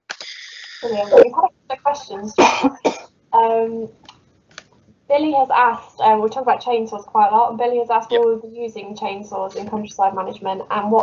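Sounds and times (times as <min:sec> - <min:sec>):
man coughing: 0:02.4 - 0:03.1.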